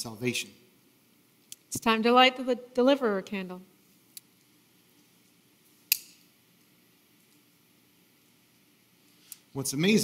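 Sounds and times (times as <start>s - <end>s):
faint room hum: 0.0s - 10.0s
lighter trigger click: 5.9s - 6.2s.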